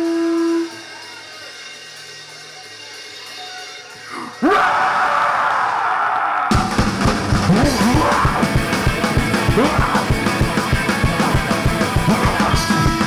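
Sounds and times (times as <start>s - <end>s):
drums fast beat: 0.0s - 5.0s, 6.5s - 13.0s
punk band playing: 0.0s - 5.5s, 6.5s - 13.0s
distorted electric guitar: 4.1s - 13.0s
person yelling: 7.5s - 8.7s, 9.4s - 10.2s.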